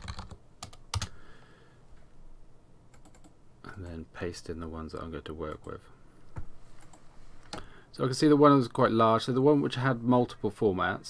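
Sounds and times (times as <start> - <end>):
computer keyboard and mouse clicks: 2.9 - 3.3.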